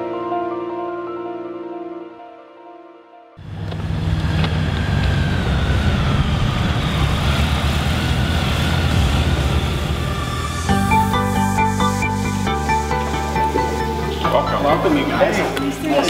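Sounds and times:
music with clear notes: 0.0s - 3.4s, 10.7s - 16.0s
motorcycle engines running: 3.4s - 16.0s.

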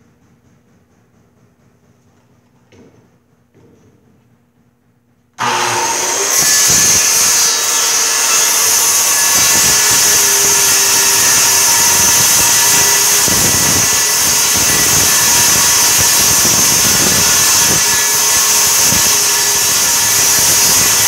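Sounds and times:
circular saw cutting wood: 5.4s - 21.0s.

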